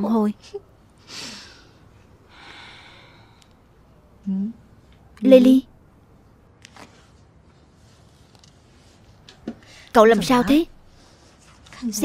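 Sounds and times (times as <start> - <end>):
woman breathing out: 1.0 - 3.5.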